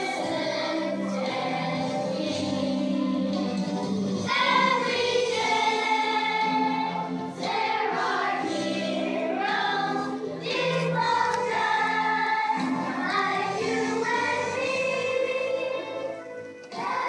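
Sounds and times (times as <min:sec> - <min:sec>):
children's choir singing: 0:00.0 - 0:17.0.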